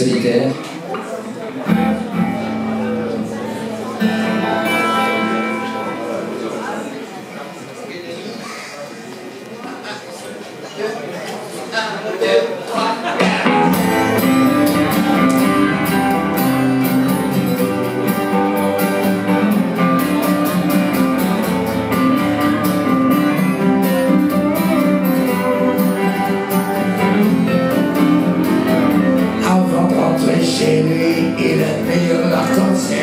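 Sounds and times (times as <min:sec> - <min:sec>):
guitars strumming: 0:01.6 - 0:07.5, 0:13.1 - 0:33.0
man singing: 0:29.2 - 0:33.0.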